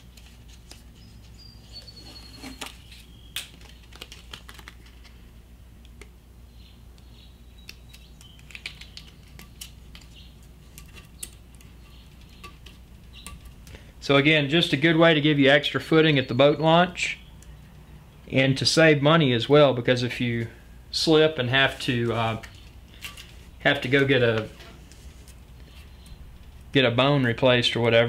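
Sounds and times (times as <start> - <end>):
grip tape crackling and tapping: 2.5 - 6.2, 7.0 - 13.8.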